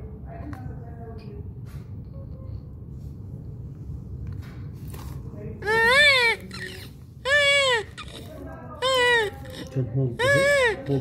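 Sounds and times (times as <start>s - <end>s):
newborn crying: 5.6s - 11.0s.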